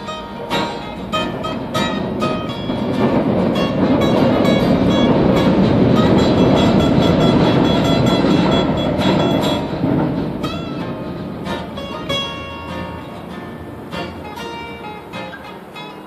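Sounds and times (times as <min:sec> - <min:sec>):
acoustic guitars playing blues: 0:00.0 - 0:16.0
passing train: 0:00.0 - 0:16.0.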